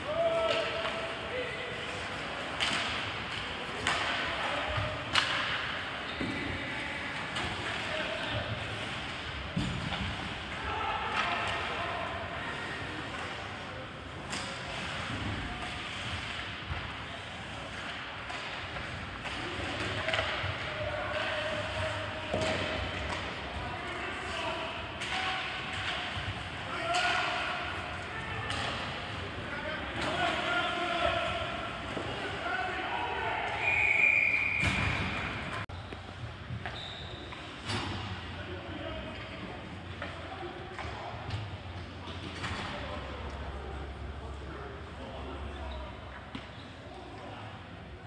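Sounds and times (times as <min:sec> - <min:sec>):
short high whistle blast: 0:33.6 - 0:34.9.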